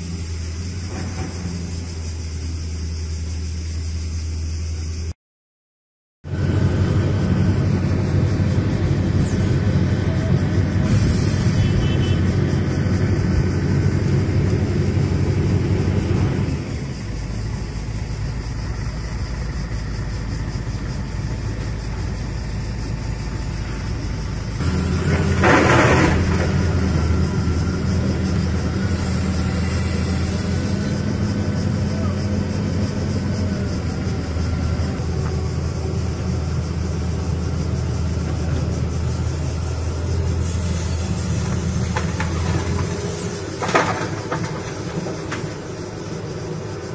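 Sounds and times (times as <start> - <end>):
heavy diesel engines running: 0.0 - 5.2, 6.2 - 46.9.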